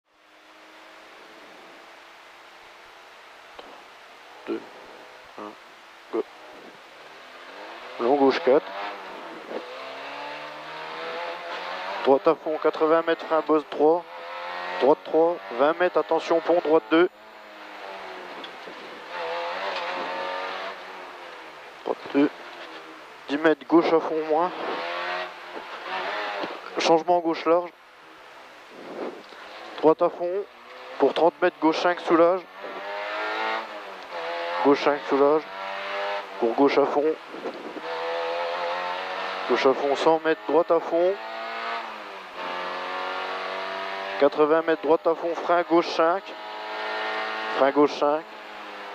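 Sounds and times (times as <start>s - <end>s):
rally car engine from inside cabin: 3.2s - 48.9s.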